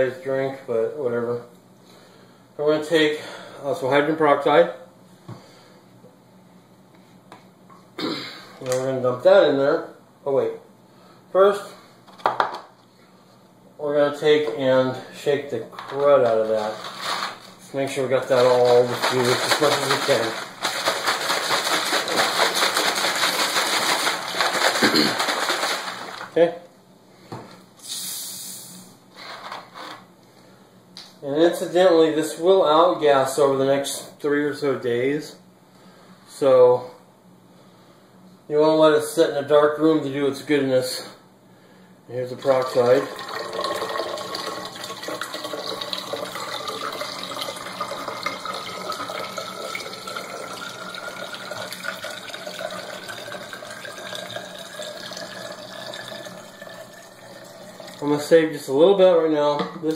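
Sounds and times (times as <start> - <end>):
liquid pouring into plastic bottle: 18.1 - 26.3, 42.4 - 58.0
gas hissing out: 27.8 - 28.8.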